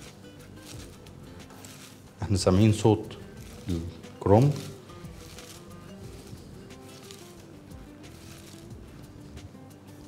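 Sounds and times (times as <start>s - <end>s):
cabbage crunching and squishing: 0.0s - 9.6s
quiet background music: 0.0s - 10.0s.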